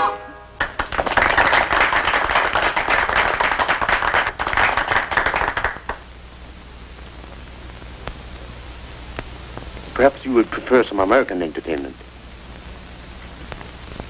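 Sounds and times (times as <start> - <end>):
soundtrack hiss: 0.0 - 14.0
applause: 0.6 - 6.1.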